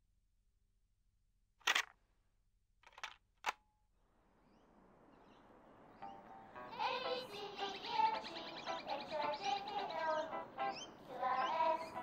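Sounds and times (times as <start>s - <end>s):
birds chirping: 4.1s - 12.0s
music: 6.0s - 12.0s.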